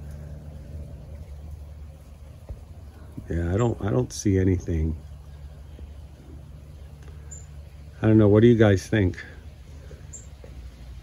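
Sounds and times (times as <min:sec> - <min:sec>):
low hum and rumble: 0:00.0 - 0:11.0.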